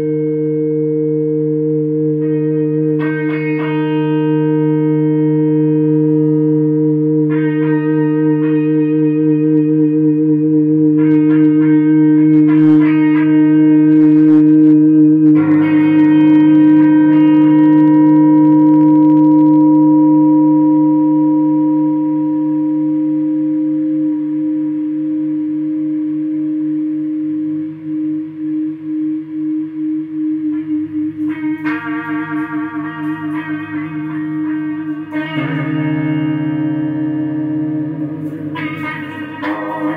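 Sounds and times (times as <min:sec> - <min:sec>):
guitar strings struck: 0:00.0 - 0:24.8, 0:30.5 - 0:39.9
electric guitar feedback drone: 0:00.0 - 0:39.9.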